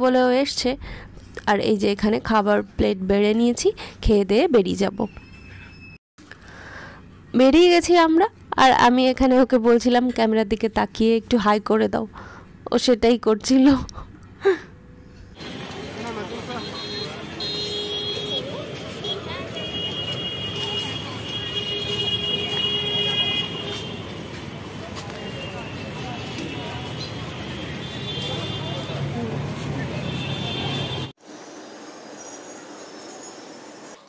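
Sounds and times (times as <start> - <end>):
traffic noise: 0.5 - 34.0
people talking: 1.4 - 5.1, 7.3 - 12.1, 12.7 - 14.0, 15.5 - 30.9
crowd voices: 15.4 - 30.9.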